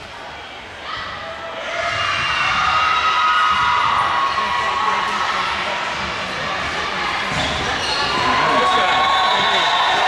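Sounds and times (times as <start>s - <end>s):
voices chattering: 4.3s - 10.0s.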